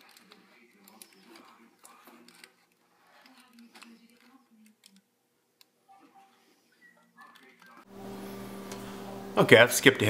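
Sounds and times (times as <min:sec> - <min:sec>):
small handling clicks: 0:00.0 - 0:05.7
low electrical hum: 0:07.9 - 0:10.0.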